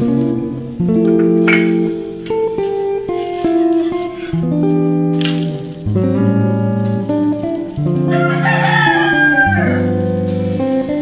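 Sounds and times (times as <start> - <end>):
strummed acoustic guitar music: 0.0 - 11.0.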